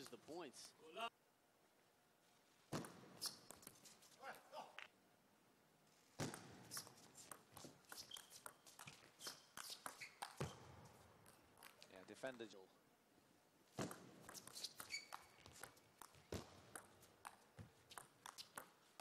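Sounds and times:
footsteps scuffing and squeaking: 0:02.7 - 0:04.3, 0:06.4 - 0:11.9, 0:13.8 - 0:19.0
table tennis ball clicking: 0:14.0 - 0:18.8.

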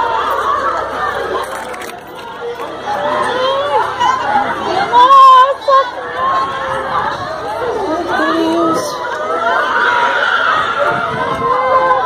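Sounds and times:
crowd of excited voices: 0:00.0 - 0:12.0.

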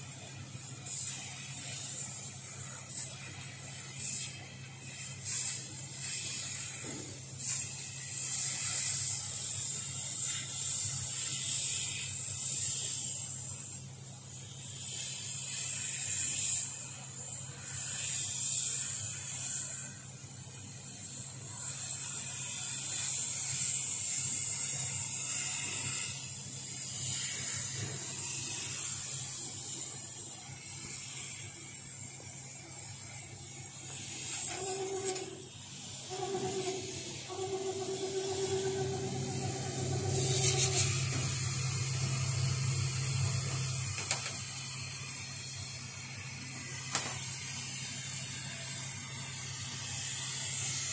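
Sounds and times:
air hissing from nozzle: 0:00.0 - 0:50.9
machine humming: 0:23.0 - 0:45.3.

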